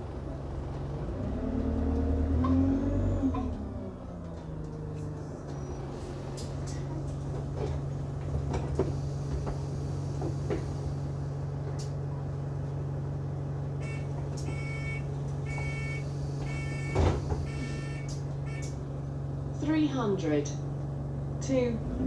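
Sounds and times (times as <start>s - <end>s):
bus engine humming: 0.0s - 22.0s
bus doors closing thud: 5.7s - 11.0s, 13.7s - 18.8s
door warning beeps: 13.8s - 18.8s.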